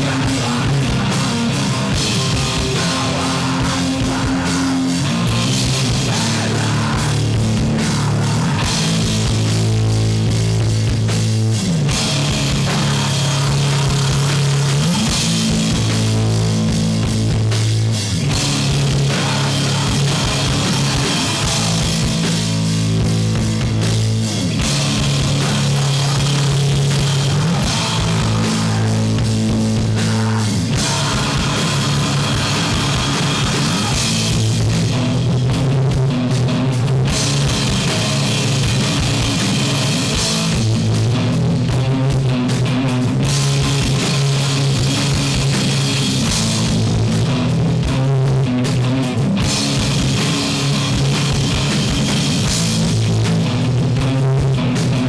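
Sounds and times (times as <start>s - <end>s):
distorted electric guitars: 0.0s - 55.0s
drum kit: 0.0s - 55.0s.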